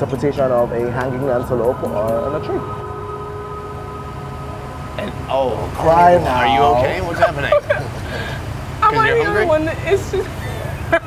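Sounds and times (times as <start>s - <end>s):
faint held tones: 0.0s - 7.2s
steady low hum: 0.0s - 8.8s.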